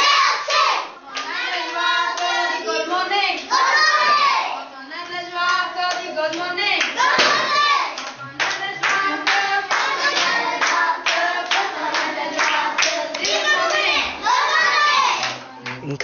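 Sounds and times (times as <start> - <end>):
children singing together: 0.0 - 4.7, 6.9 - 15.5
children clapping along: 1.1 - 2.6, 5.0 - 16.0.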